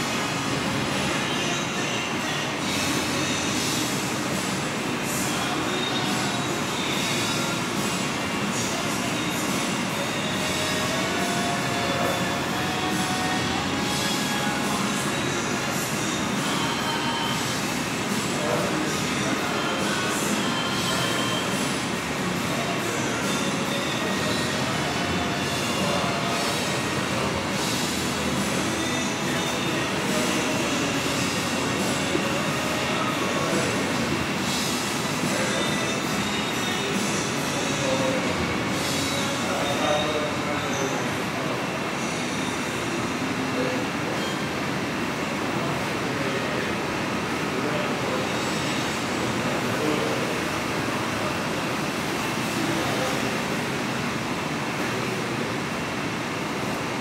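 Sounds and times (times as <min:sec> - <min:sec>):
restaurant room noise: 0:00.0 - 0:57.0.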